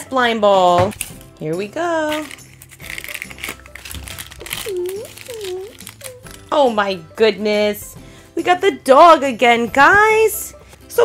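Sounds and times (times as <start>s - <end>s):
plastic bag tearing: 2.1s - 6.5s
person making short vocal sounds: 4.4s - 5.8s.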